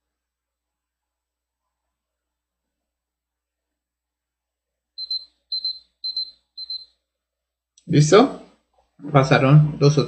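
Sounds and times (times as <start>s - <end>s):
electronic timer beeping: 5.0s - 7.0s.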